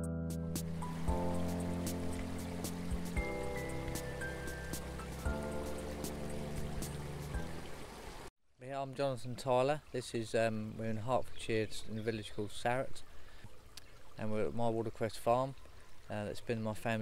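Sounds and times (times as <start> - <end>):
background music sustained chords: 0.0 - 7.8
water running along a channel: 0.6 - 17.0.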